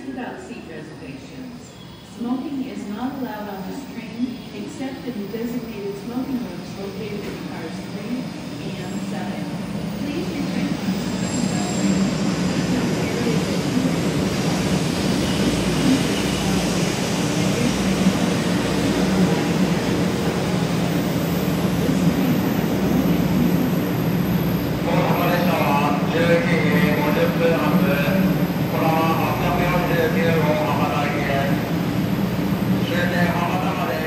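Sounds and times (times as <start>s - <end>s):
train running past: 0.0s - 34.0s.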